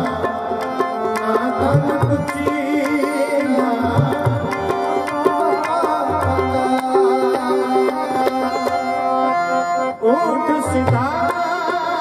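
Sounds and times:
harmonium chords: 0.0 - 12.0.

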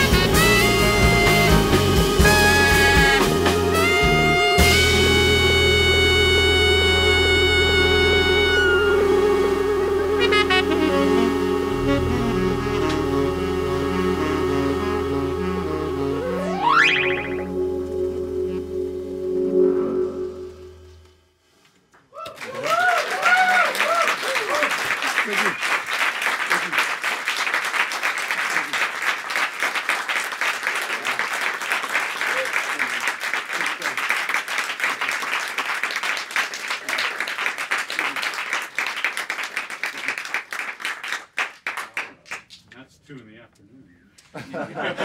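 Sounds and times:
whoops and cheers: 22.1 - 24.8
audience applauding: 22.2 - 42.6.

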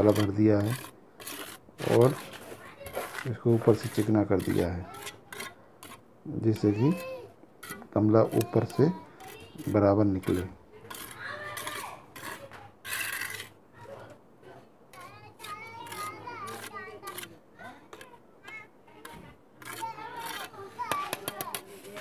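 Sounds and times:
trowel scraping wet mortar: 0.0 - 14.2, 14.9 - 22.0
children chattering and playing: 0.0 - 22.0.

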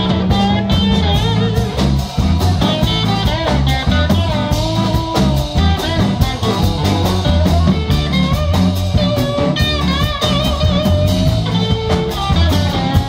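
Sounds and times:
blues band playing: 0.0 - 13.0
drum beat: 0.0 - 13.0
electric guitar lead: 0.0 - 13.0.

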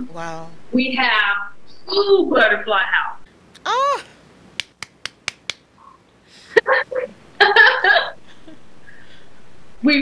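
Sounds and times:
quick sharp clicks: 4.6 - 5.7.

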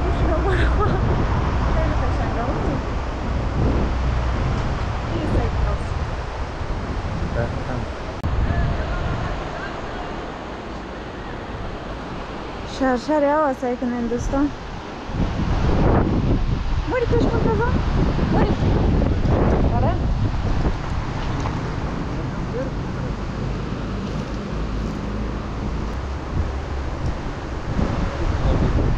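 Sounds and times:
moving vehicle rumble: 0.0 - 28.9
wind buffeting microphone: 0.0 - 28.9.

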